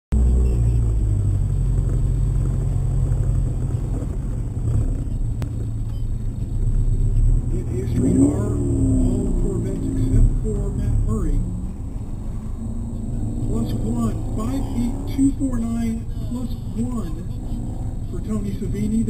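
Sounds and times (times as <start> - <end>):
car engine idling: 0.1 - 19.0
person speaking: 13.4 - 19.0.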